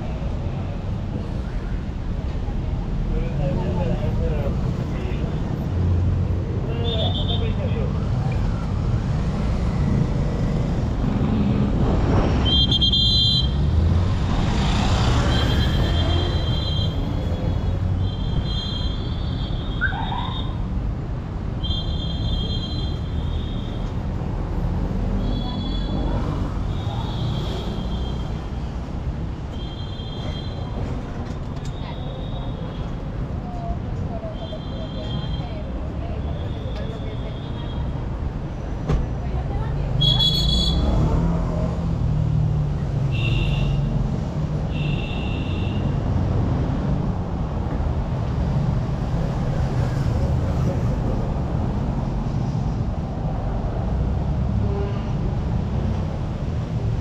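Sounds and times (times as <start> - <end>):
traffic rumble: 0.0 - 57.0.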